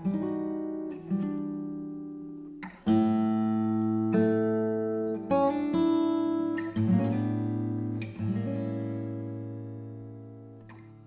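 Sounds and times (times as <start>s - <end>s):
acoustic guitar chords plucked: 0.0s - 11.0s.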